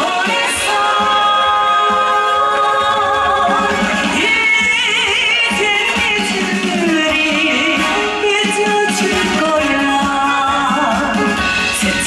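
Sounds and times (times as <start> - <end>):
pop song accompaniment: 0.0 - 12.0.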